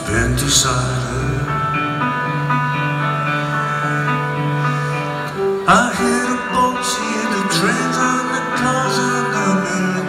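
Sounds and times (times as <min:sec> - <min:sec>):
acoustic guitar: 0:00.0 - 0:10.0
live band playing: 0:00.0 - 0:10.0.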